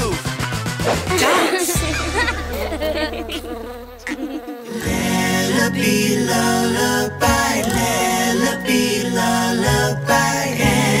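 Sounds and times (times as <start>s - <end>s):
music: 0.0s - 4.0s, 4.7s - 11.0s
cartoon bee buzzing: 0.9s - 8.5s.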